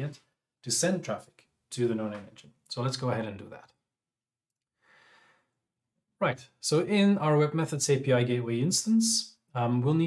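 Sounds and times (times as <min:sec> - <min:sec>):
soft breath: 0:04.8 - 0:05.6.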